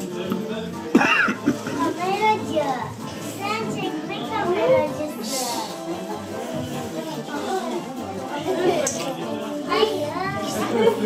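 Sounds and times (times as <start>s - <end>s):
several people talking at once: 0.0s - 11.0s.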